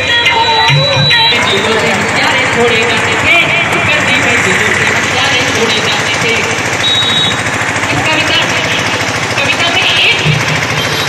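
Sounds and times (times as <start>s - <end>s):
voice over a loudspeaker: 0.6s - 6.7s, 7.8s - 10.6s.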